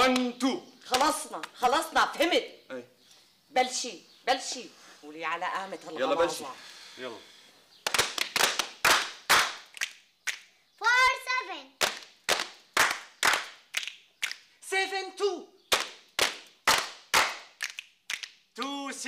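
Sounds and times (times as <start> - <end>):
people clapping in rhythm: 0.0 - 1.6, 7.8 - 10.5, 11.8 - 14.5, 15.7 - 18.8.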